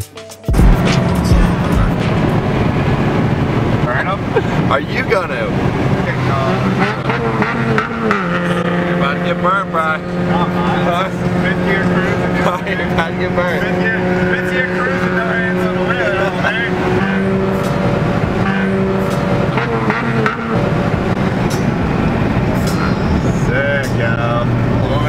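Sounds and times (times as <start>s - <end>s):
car engine and tyre drone: 0.5s - 25.0s.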